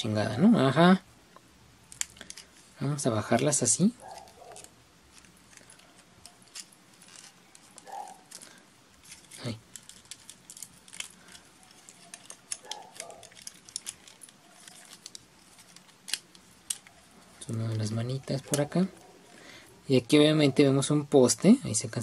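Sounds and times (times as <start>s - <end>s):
plastic toy parts clicking: 1.9s - 2.6s, 4.0s - 17.0s.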